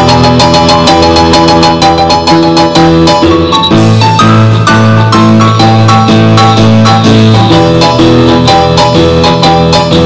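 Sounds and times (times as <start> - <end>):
bass line: 0.0 - 10.0.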